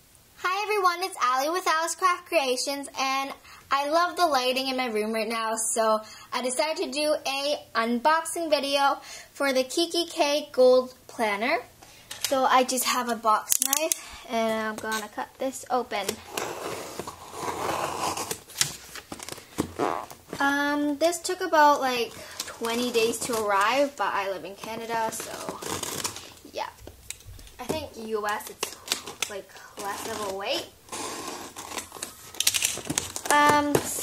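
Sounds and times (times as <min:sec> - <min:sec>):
sharp clicks: 0:13.5 - 0:14.0
cardboard and paper rustling: 0:16.0 - 0:20.5, 0:21.7 - 0:34.0
blade slicing packing tape: 0:28.6 - 0:33.4.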